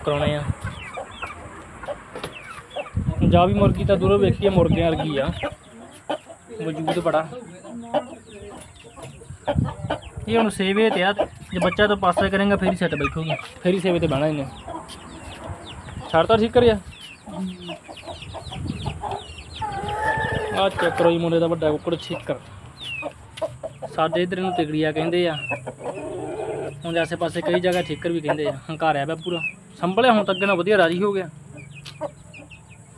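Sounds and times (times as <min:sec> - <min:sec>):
chickens clucking: 0:00.0 - 0:32.9.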